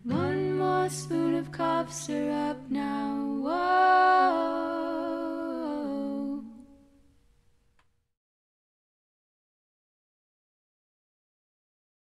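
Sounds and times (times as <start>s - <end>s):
women singing in harmony: 0.0s - 6.9s.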